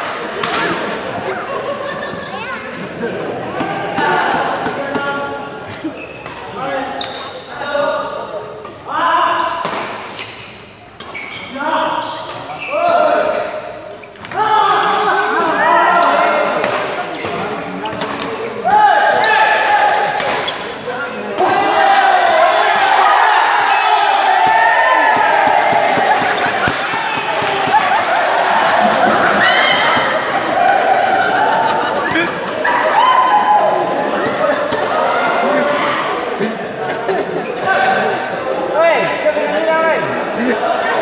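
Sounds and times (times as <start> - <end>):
people calling and talking: 0.0 - 41.0.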